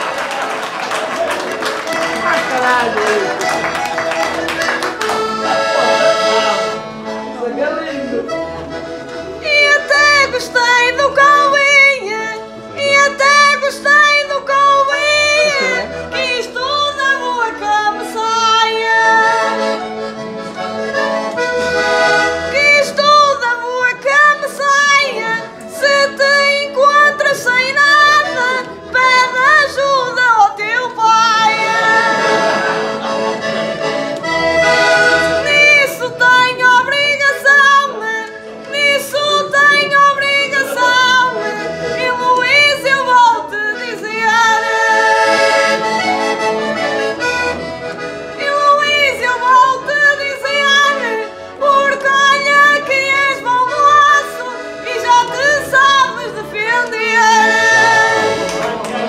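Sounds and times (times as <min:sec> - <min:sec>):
button accordion melody: 0:00.0 - 0:59.0.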